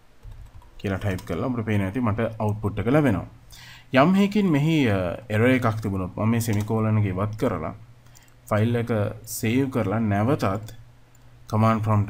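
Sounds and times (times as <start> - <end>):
keystrokes on computer keyboard: 0.2 - 1.4, 6.5 - 7.4, 8.0 - 8.4
person speaking: 0.3 - 12.0.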